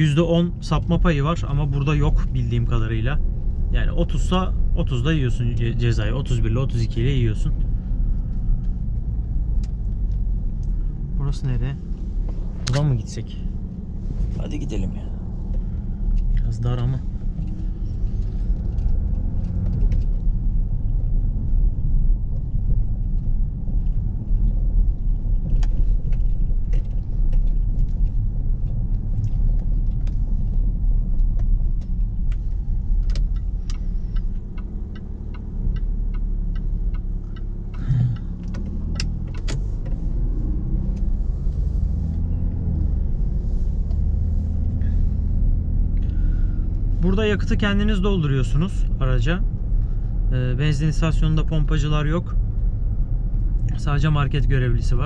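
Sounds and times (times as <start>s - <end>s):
car engine and road rumble: 0.0s - 55.0s
light clicks and ticks: 22.3s - 40.0s.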